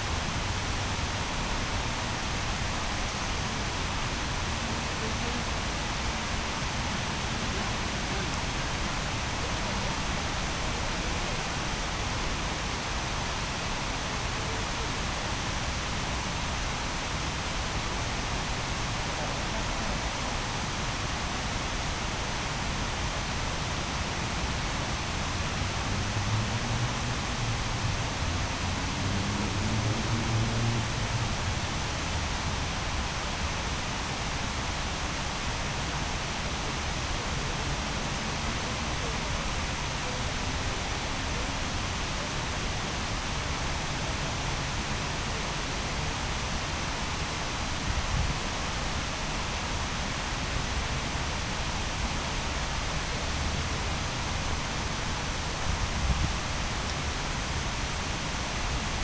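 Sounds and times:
night city ambience hiss: 0.0s - 59.0s.

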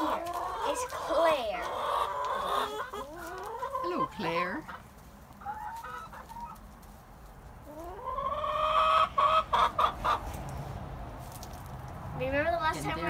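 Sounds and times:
hen clucking: 0.0s - 10.5s.

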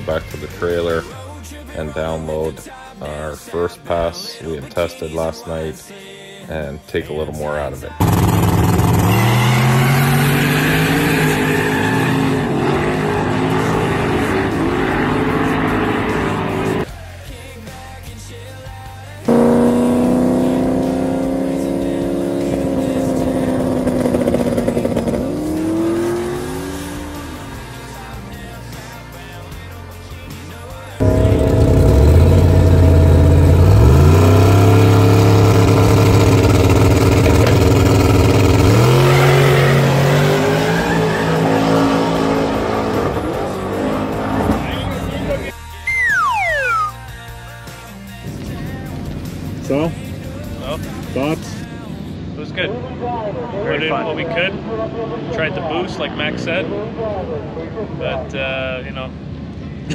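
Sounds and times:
drag race engines at full throttle: 8.0s - 16.9s, 19.3s - 28.2s, 31.0s - 46.9s
short squeals: 8.8s - 13.7s.

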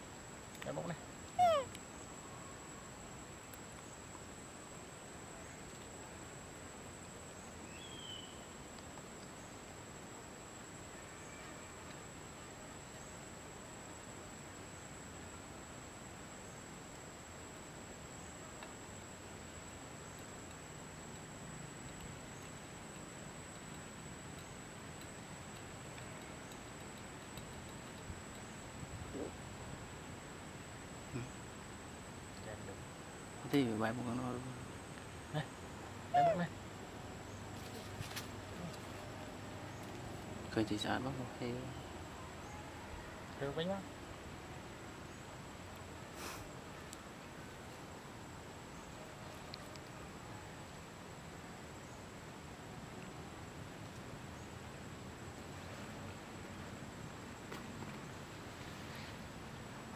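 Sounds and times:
steady low hiss: 0.0s - 59.9s
monkey call falling in pitch: 1.4s - 1.7s, 36.1s - 36.5s
faint ticks: 20.0s - 28.7s.

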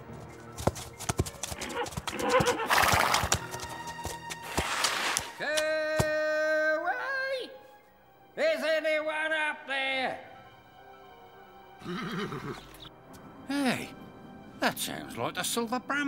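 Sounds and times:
background music: 0.0s - 16.0s
cartoon hooves knocking: 0.5s - 4.9s
horse neighing: 1.6s - 3.3s, 11.8s - 12.9s.

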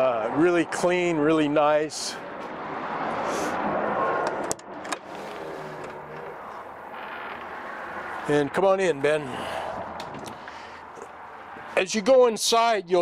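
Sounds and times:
road traffic noise: 0.0s - 13.0s
vehicle passing by: 2.0s - 11.8s.

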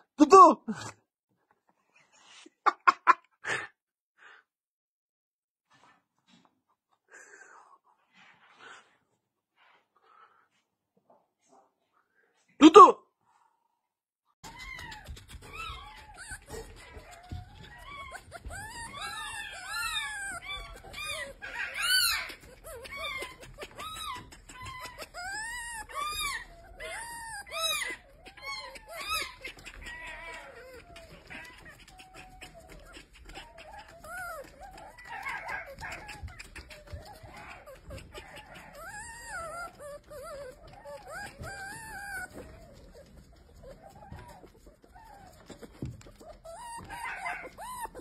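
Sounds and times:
fox kit whining squeaks: 14.4s - 48.0s.

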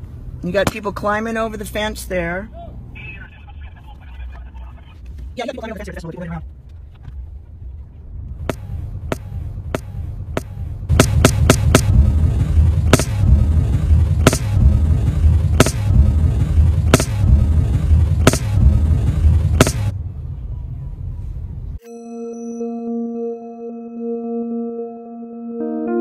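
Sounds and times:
loud low rumble: 6.3s - 21.8s
gunshot pops: 19.6s - 19.9s
ambient music tones: 21.8s - 26.0s.

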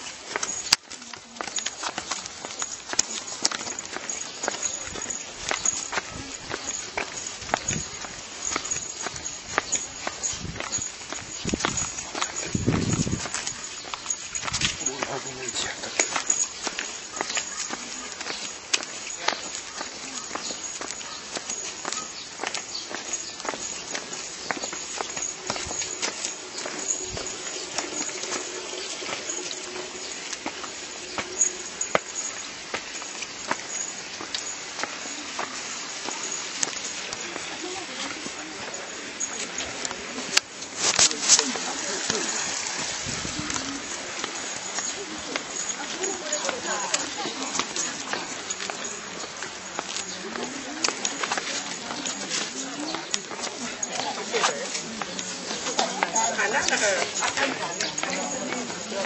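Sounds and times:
footsteps on paved path: 0.0s - 59.0s.

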